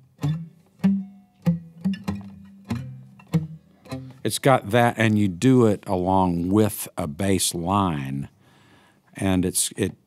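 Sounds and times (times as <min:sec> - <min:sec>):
acoustic guitar bass notes: 0:00.0 - 0:08.2.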